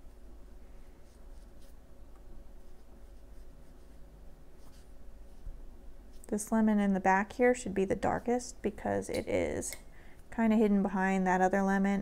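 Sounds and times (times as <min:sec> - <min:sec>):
low steady hum: 0:00.0 - 0:12.0
paintbrush brushing on paper: 0:00.8 - 0:01.9, 0:02.5 - 0:06.3.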